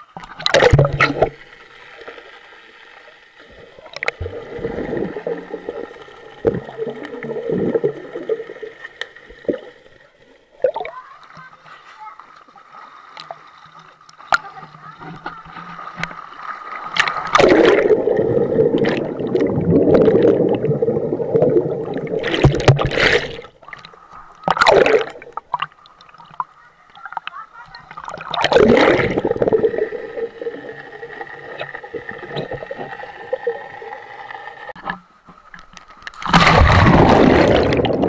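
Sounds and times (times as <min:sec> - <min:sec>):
water splashing and gurgling: 0:00.0 - 0:38.0
muffled underwater noise: 0:09.3 - 0:22.5, 0:26.2 - 0:35.0.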